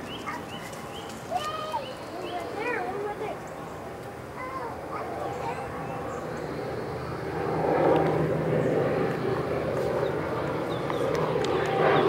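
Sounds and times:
distant engine drone: 0.0s - 12.0s.

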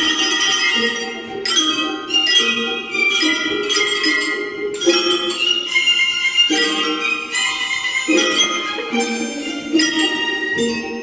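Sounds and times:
hand bells playing a melody: 0.0s - 11.0s.

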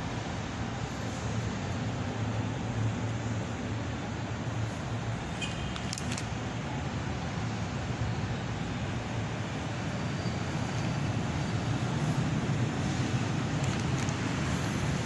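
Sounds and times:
distant road traffic rumble: 0.0s - 15.0s.

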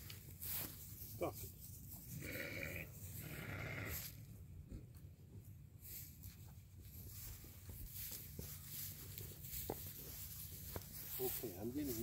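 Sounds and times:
sheep rustling on grass: 0.0s - 4.3s, 5.0s - 12.0s.

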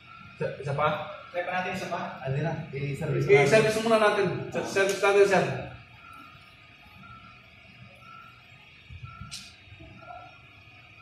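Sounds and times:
faint high beep: 5.7s - 10.4s.

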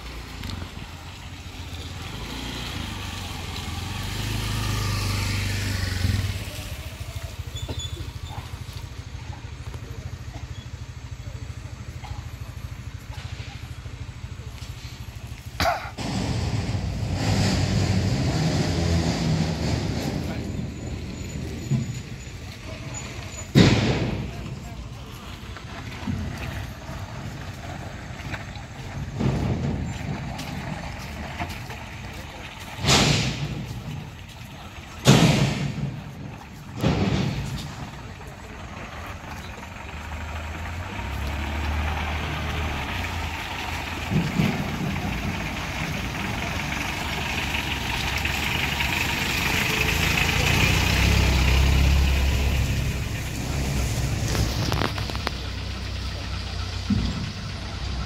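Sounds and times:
vehicle engine running: 0.0s - 58.0s.

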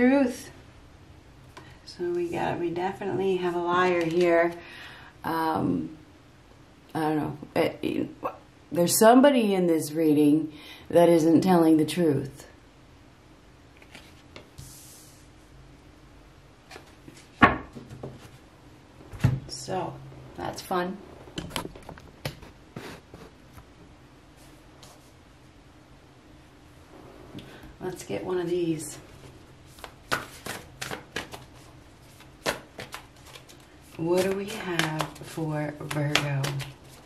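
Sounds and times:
cards being shuffled: 13.8s - 14.5s, 16.7s - 18.4s, 29.2s - 37.0s.

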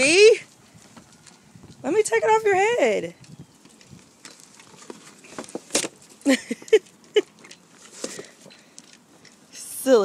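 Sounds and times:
cardboard box crackling and rustling: 3.6s - 6.6s.

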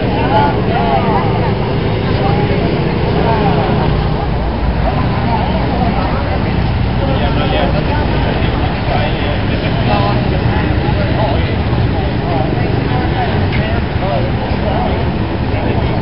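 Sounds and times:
low rumble: 0.0s - 14.5s
crowd chatter: 0.0s - 16.0s.

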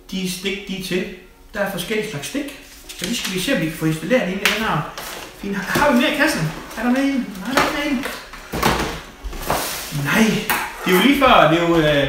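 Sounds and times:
cardboard packaging handled: 4.9s - 10.0s
box knocking on table: 7.5s - 9.6s.

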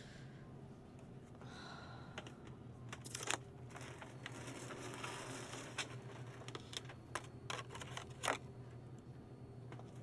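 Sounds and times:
low steady hum: 0.0s - 10.0s
plastic packaging clicks: 2.9s - 4.3s.

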